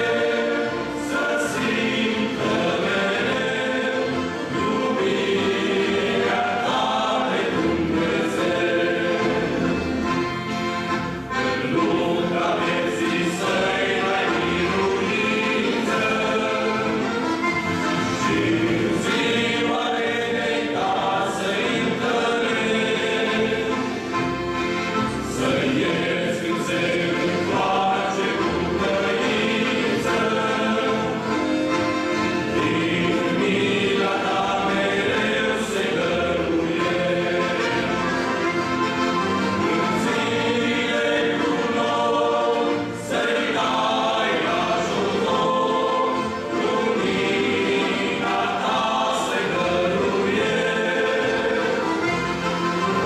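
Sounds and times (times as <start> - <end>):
accordion: 0.0 - 53.0
men's choir singing a hymn: 0.0 - 53.0.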